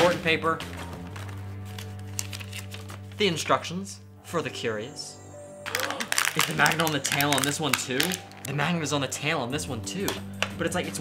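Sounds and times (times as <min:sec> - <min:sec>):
background music low notes: 0:00.0 - 0:11.0
plastic blister pack crinkling: 0:00.8 - 0:03.2, 0:05.7 - 0:08.5.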